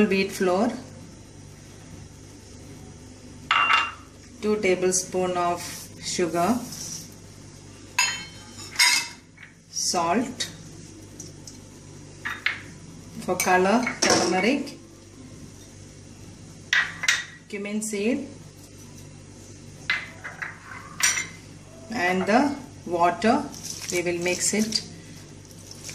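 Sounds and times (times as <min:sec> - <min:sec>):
low steady hum: 0:00.0 - 0:25.9
steel and glass bowls clinking: 0:08.0 - 0:09.2.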